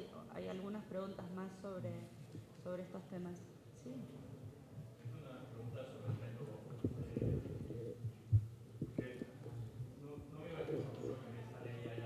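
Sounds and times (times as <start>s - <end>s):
low electrical hum: 0.0s - 12.0s
microphone thumps and knocks: 6.8s - 9.4s.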